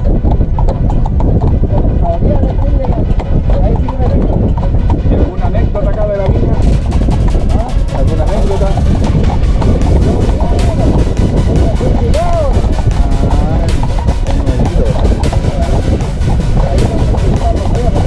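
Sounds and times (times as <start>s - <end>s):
carriage rumbling: 0.0s - 18.0s
hooves clip-clopping on pavement: 0.0s - 18.0s
sharp clicks and rattles: 0.0s - 18.0s.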